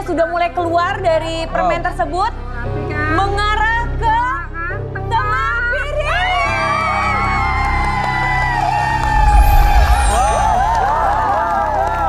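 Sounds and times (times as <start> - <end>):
audience whooping and cheering: 6.4 - 12.0
game show music: 8.4 - 12.0
rising high sweep: 9.0 - 11.7
heavy bass hit: 9.1 - 11.1.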